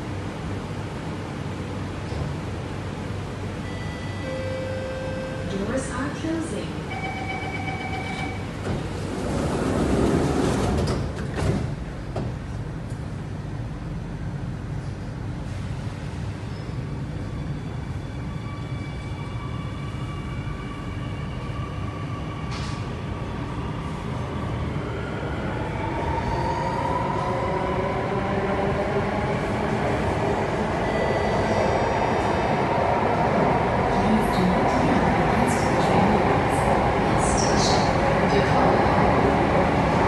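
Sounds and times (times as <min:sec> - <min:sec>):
metro train rumble: 0:00.0 - 0:40.0.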